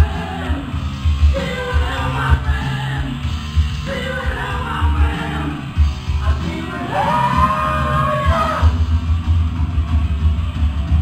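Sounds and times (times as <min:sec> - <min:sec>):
drums: 0:00.0 - 0:11.0
rock band playing live: 0:00.0 - 0:11.0
person yelling a long note: 0:06.7 - 0:08.7.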